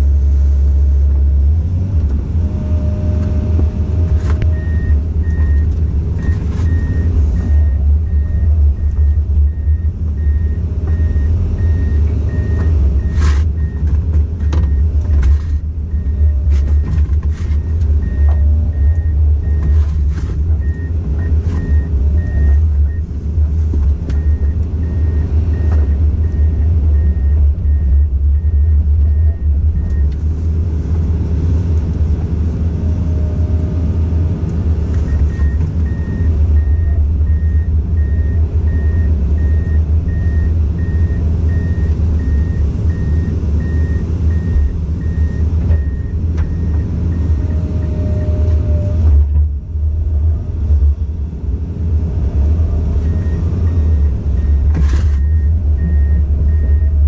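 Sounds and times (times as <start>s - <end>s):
excavator diesel engine rumbling: 0.0s - 57.0s.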